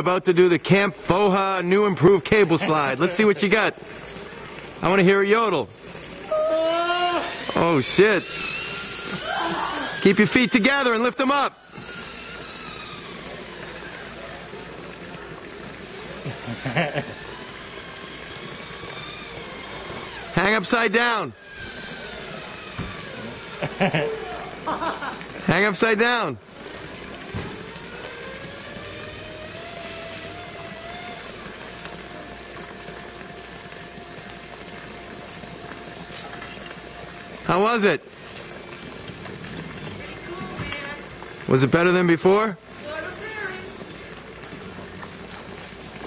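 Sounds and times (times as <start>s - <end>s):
zip-line pulleys whirring on cable: 5.4s - 46.0s.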